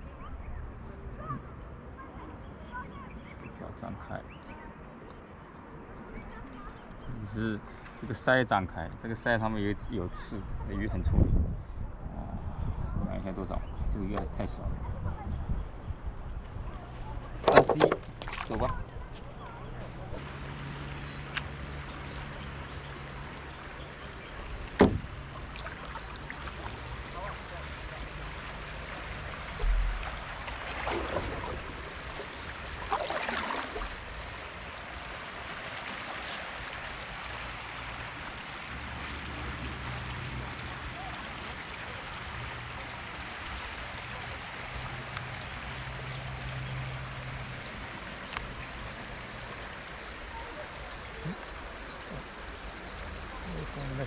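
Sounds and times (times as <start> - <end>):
water lapping against paddleboard: 15.2 - 37.2
low thump: 24.7 - 25.2, 29.5 - 31.7.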